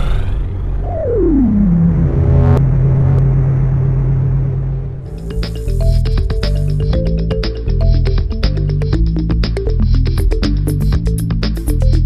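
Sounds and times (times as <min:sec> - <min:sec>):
low rumble: 0:00.0 - 0:10.1
low synthesized drone: 0:00.0 - 0:11.2.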